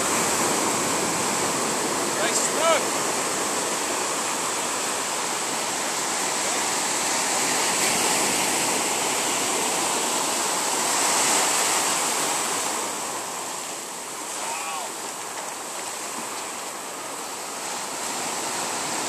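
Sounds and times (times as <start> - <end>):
ocean surf breaking: 0.0 - 19.0.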